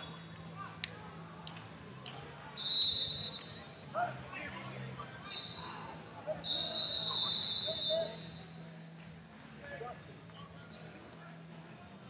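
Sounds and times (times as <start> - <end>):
faint voices: 0.0 - 12.0
whistle blast: 2.6 - 3.6, 6.4 - 8.3.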